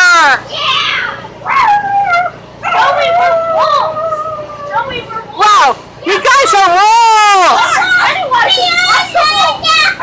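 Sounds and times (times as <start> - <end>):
young children shouting: 0.0 - 5.4, 6.4 - 10.0.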